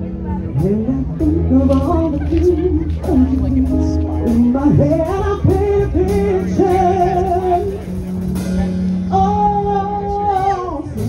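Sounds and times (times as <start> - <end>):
rock band playing: 0.0 - 11.0
woman singing: 0.6 - 7.8, 9.1 - 11.0.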